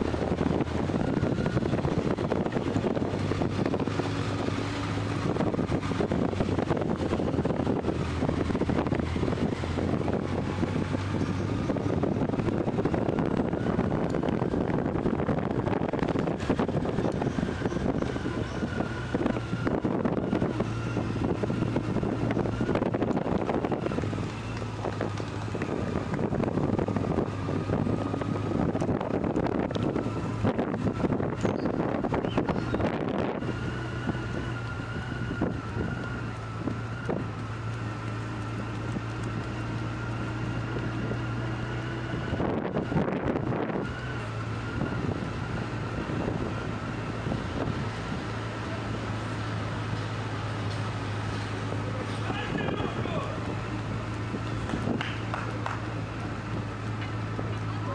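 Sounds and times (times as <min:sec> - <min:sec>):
motorcycle engine running: 0:00.0 - 0:57.9
wind gusts on microphone: 0:00.0 - 0:57.9.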